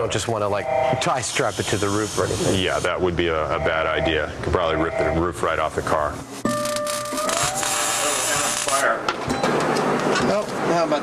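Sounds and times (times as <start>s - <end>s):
welding arc crackling and hissing: 1.1s - 3.1s, 5.6s - 9.0s.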